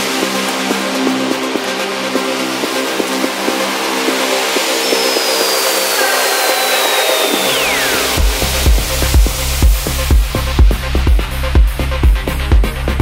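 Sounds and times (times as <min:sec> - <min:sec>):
bright noise sweep: 0:00.9 - 0:10.5
high gliding tone: 0:02.4 - 0:10.1
deep kick drum: 0:08.2 - 0:13.0.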